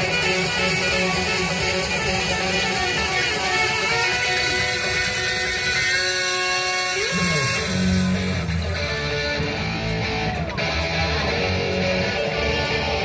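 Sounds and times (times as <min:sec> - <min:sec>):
music with sustained notes: 0:00.0 - 0:13.0.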